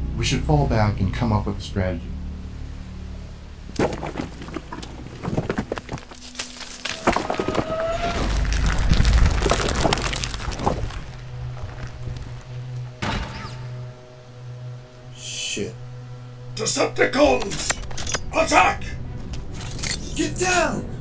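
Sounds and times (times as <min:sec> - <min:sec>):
low hum with held tones: 0:00.0 - 0:07.3
film music: 0:00.0 - 0:21.0
crashes and impacts: 0:03.7 - 0:13.7
deep rumbling boom: 0:08.0 - 0:12.4.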